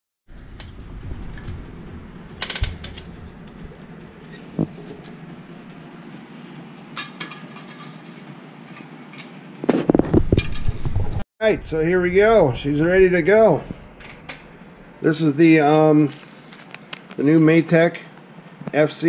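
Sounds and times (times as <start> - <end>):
background hum: 0.3 - 19.0.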